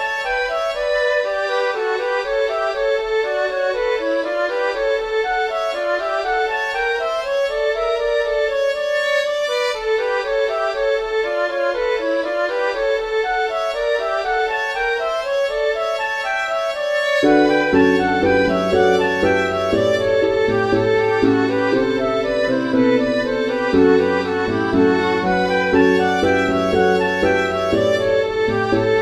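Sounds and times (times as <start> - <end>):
celtic-style orchestral music: 0.0 - 29.0.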